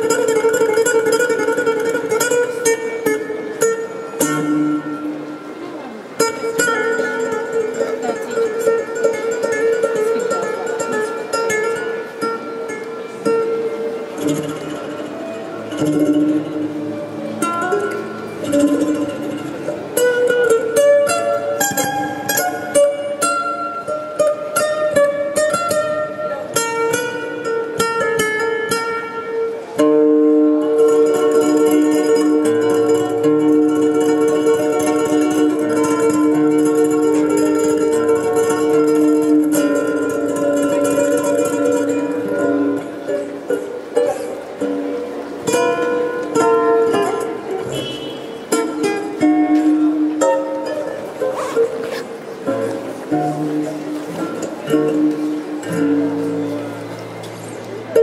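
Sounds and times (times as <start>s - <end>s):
fingerstyle acoustic guitar: 0.0s - 58.0s.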